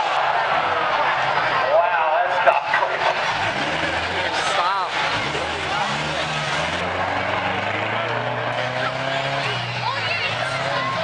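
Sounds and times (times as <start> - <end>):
car engine running hard: 0.0 - 11.0
crowd voices: 0.0 - 11.0.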